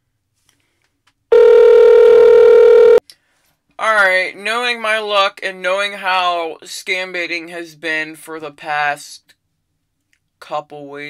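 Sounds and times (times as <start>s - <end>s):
telephone line tone: 1.3s - 3.0s.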